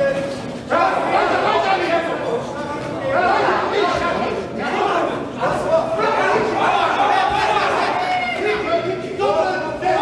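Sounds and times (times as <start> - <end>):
people shouting encouragement: 3.0 - 10.0.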